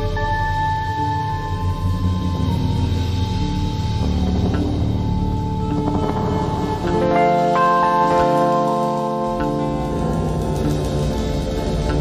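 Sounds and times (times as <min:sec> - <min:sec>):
jazz ensemble playing: 0:05.0 - 0:12.0.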